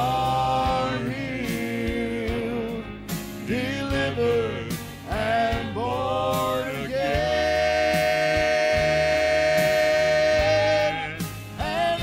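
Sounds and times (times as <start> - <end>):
gospel singers holding note: 0.0 - 2.9, 3.5 - 12.0
steady bass line: 0.0 - 12.0.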